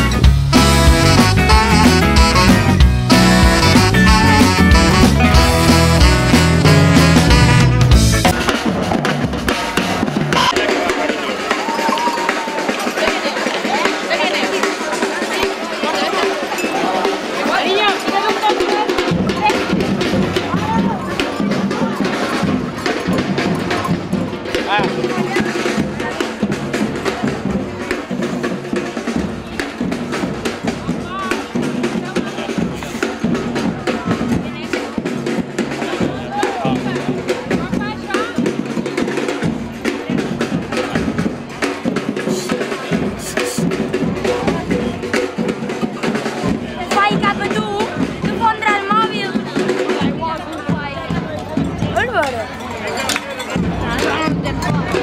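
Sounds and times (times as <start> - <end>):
crowd voices: 0.0 - 55.0
drumming of bass drums and snares: 0.0 - 55.0.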